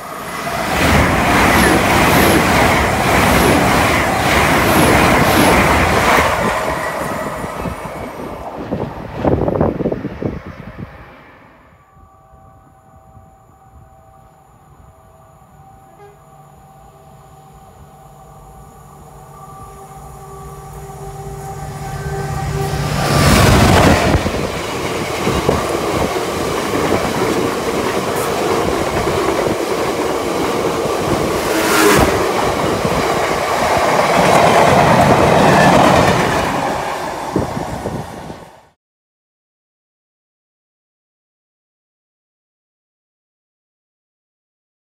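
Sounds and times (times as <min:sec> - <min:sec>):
train wheel rumble: 0:00.0 - 0:11.3, 0:17.7 - 0:38.7
diesel locomotive engine: 0:00.0 - 0:38.8
passing train: 0:00.0 - 0:38.8.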